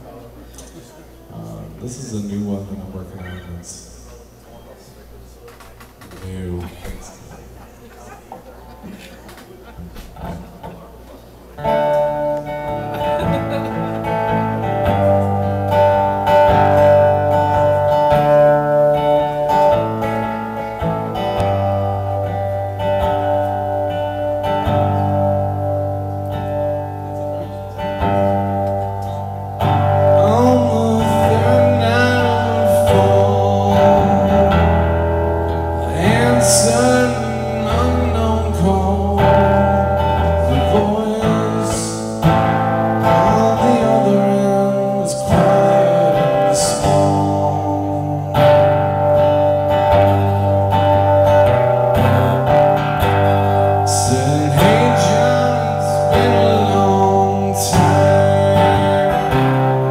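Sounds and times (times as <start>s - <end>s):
archtop guitar playing slow song: 0.0s - 59.9s
man singing: 27.8s - 59.9s.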